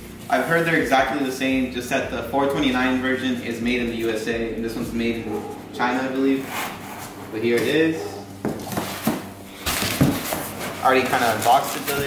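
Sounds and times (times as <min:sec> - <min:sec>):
cardboard flaps rustling and scraping: 0:08.4 - 0:12.0.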